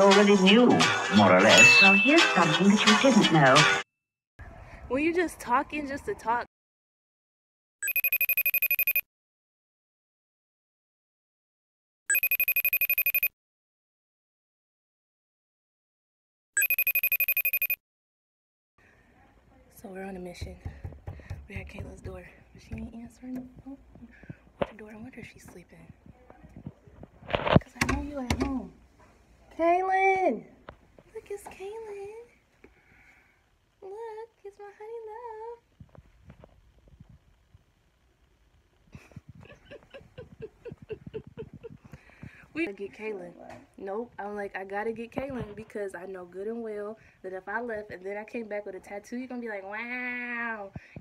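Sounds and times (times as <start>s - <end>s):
phone call ringing tone trilling: 7.8s - 9.0s, 12.1s - 13.3s, 16.6s - 17.8s.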